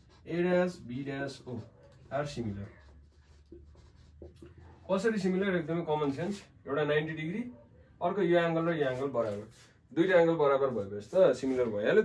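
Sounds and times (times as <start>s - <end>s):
marker scratching on whiteboard: 1.4s - 5.3s.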